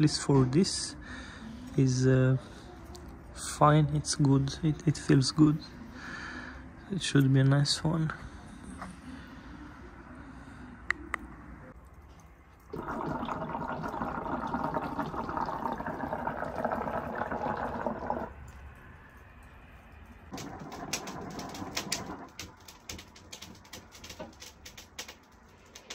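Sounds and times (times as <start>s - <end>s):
water bubbling in hookah: 12.7s - 18.4s, 20.3s - 22.7s.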